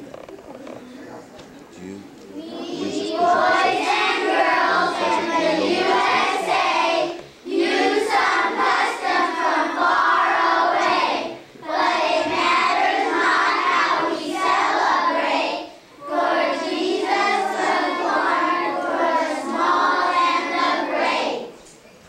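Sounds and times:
children singing as a choir: 2.4 - 21.6.

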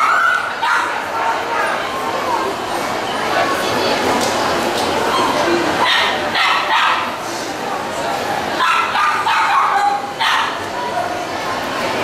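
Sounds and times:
people talking: 0.0 - 12.0
small dogs yapping: 5.1 - 7.1, 8.6 - 10.6.

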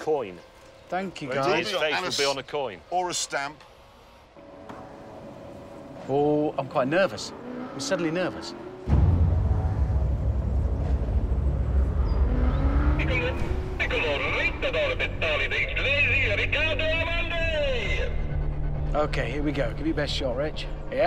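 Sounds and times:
deep low drone: 8.9 - 14.0.

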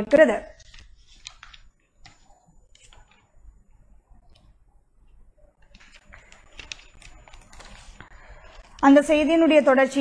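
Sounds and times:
woman's voice: 0.0 - 0.5, 8.8 - 10.0.

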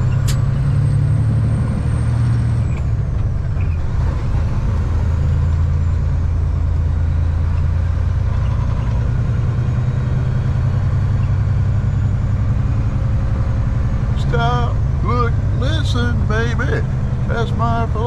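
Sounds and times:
road noise: 0.0 - 18.0
truck diesel engine droning: 0.0 - 18.0.

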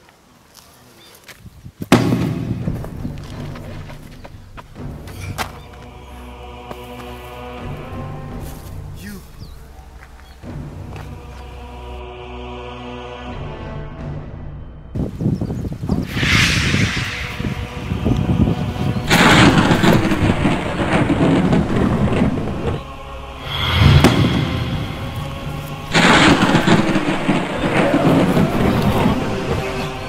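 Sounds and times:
dramatic film music: 2.4 - 15.1, 16.0 - 30.0
loud sound effects: 16.1 - 18.3, 23.3 - 28.3
deep hit: 16.1 - 18.4, 23.3 - 27.6.

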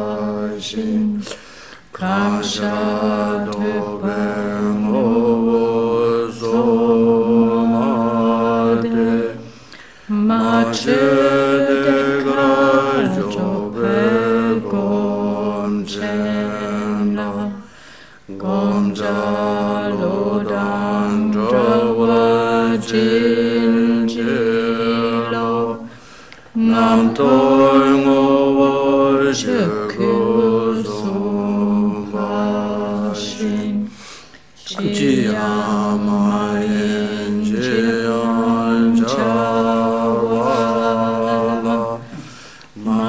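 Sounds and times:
person chanting a slow melody: 0.0 - 43.0
person chanting on one pitch: 34.6 - 42.2.

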